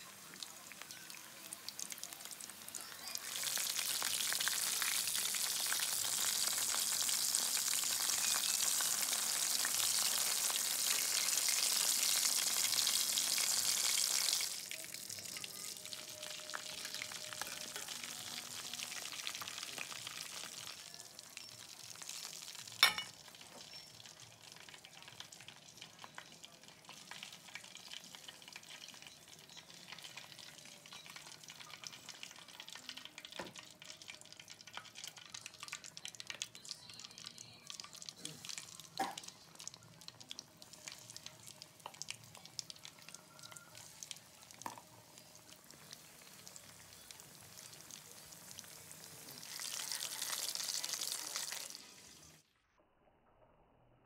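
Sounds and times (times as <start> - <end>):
food deep-frying in oil: 0.0 - 52.5.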